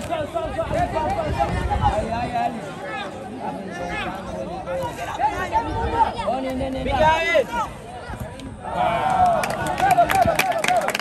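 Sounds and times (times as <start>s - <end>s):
people shouting and chattering: 0.0s - 11.0s.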